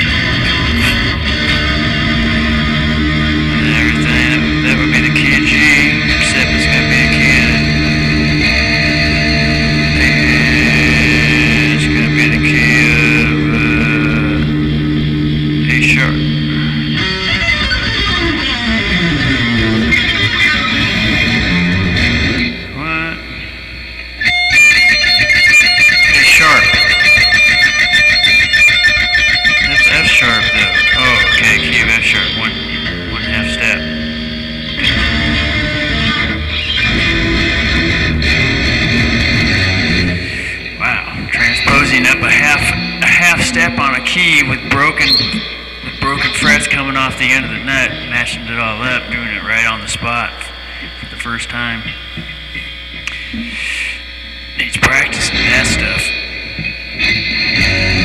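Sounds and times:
solo guitar improvising: 0.0s - 53.6s, 54.7s - 58.0s.

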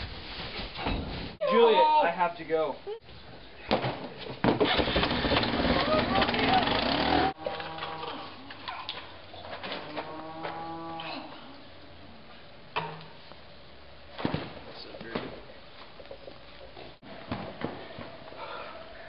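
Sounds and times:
cow mooing: 7.3s - 8.4s, 9.8s - 11.4s.

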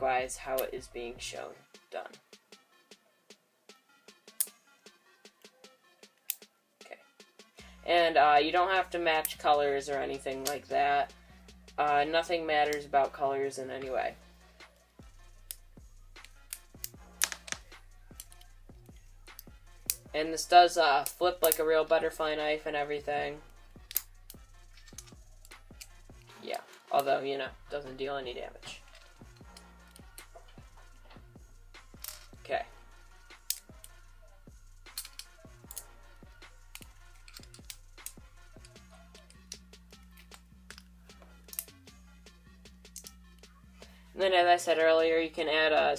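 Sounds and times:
background music with low beat: 0.0s - 45.9s
plastic pieces clicking together: 16.2s - 18.5s, 23.8s - 25.9s, 34.9s - 35.9s, 36.7s - 40.9s.

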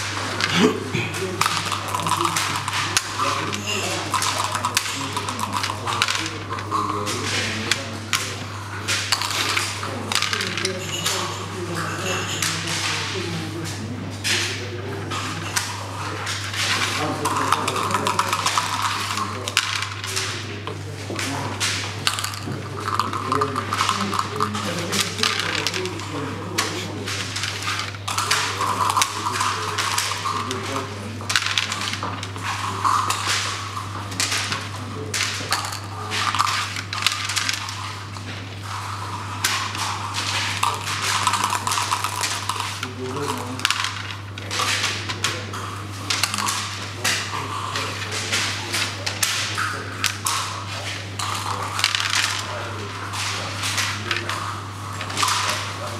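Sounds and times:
steady low hum: 0.0s - 55.9s
checkers clacking on wooden board: 0.1s - 11.4s, 15.5s - 20.5s, 21.1s - 45.3s, 46.1s - 55.8s
dice rolling: 1.4s - 7.2s, 16.4s - 20.4s, 21.7s - 30.7s, 31.3s - 38.1s, 38.7s - 45.2s, 51.2s - 55.8s.

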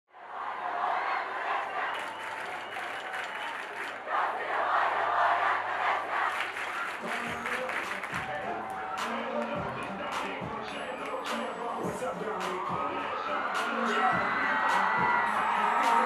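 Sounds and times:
crowd cheering and shouting: 0.1s - 16.0s.

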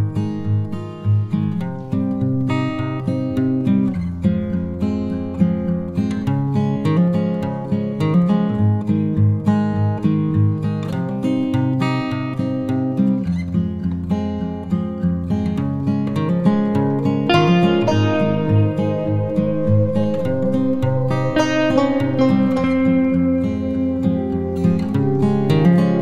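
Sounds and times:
acoustic guitar music: 0.0s - 26.0s.

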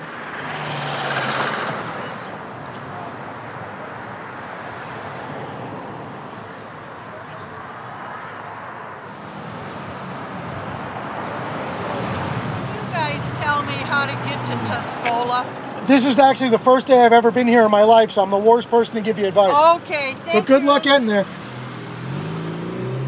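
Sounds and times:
car passing by: 0.0s - 3.6s, 7.3s - 16.3s, 19.4s - 23.0s
car engine hum: 0.0s - 23.0s
road traffic noise: 0.0s - 23.0s.

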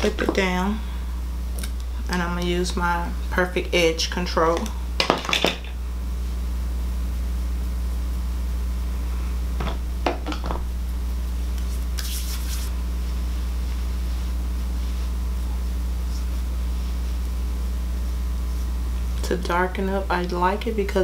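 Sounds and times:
low electrical hum: 0.0s - 21.0s
short scrapes: 11.6s - 15.2s.

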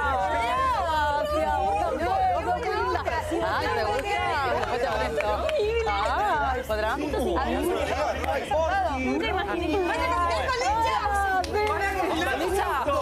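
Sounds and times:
people chattering: 0.0s - 13.0s.

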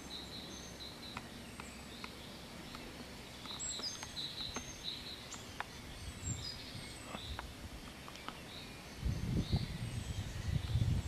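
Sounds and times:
small birds chirping: 0.0s - 11.0s
steady background hiss: 0.0s - 11.0s.

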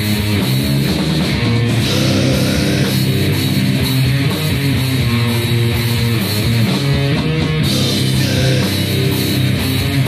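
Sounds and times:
bass guitar: 0.0s - 10.0s
distorted guitars: 0.0s - 10.0s
drum kit: 0.0s - 10.0s.

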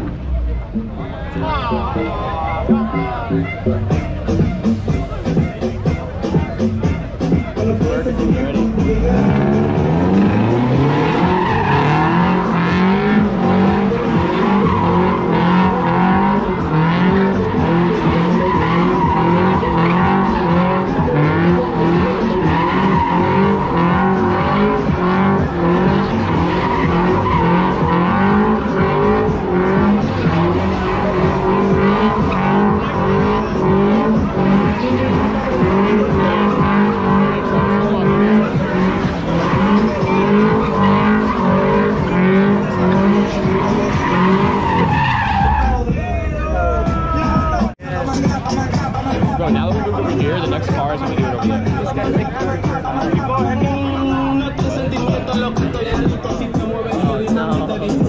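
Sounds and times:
car engine at high revs: 6.4s - 45.9s
tyre squeal: 9.2s - 46.0s.

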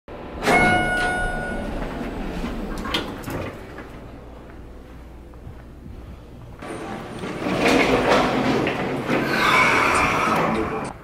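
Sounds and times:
elevator doors sliding open: 0.2s - 4.8s, 6.6s - 11.0s
elevator chime: 0.4s - 3.7s.

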